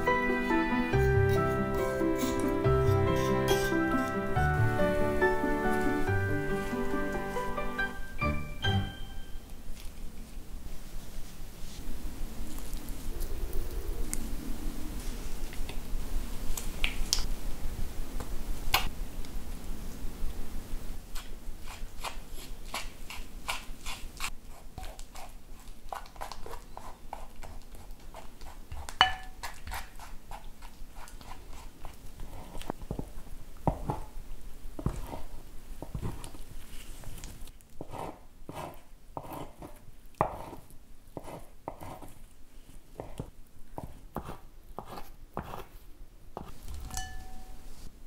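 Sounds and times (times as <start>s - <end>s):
knife chopping on wooden board: 37.8s - 40.6s, 43.0s - 45.7s.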